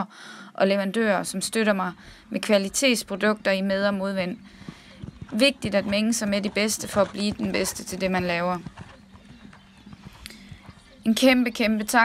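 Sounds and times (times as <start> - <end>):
faint low hum: 0.9 - 12.0
horse hoofbeats: 1.2 - 12.0.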